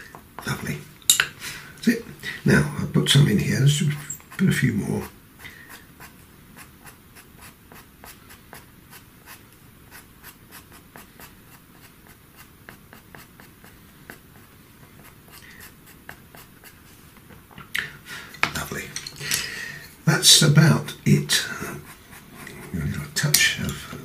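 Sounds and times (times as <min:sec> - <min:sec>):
pastel pencil scratching on paper: 0:03.9 - 0:17.1, 0:20.8 - 0:23.6.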